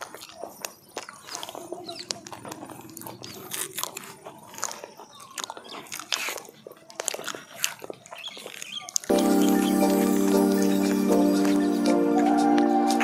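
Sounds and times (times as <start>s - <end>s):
banana peels tearing: 0.0s - 9.1s
people chewing with wet mouth clicks: 0.0s - 9.1s.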